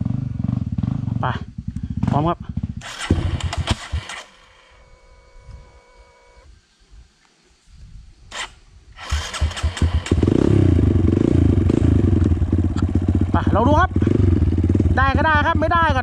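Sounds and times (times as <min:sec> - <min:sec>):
dirt bike engine running: 0:00.0 - 0:06.4, 0:09.0 - 0:16.0.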